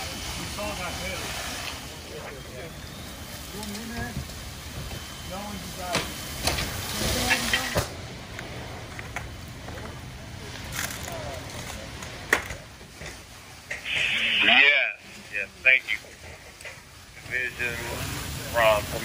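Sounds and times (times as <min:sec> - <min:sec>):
burning wood popping: 0:00.0 - 0:19.0
low rumble of fire: 0:00.0 - 0:19.0
indistinct voices: 0:13.7 - 0:19.0.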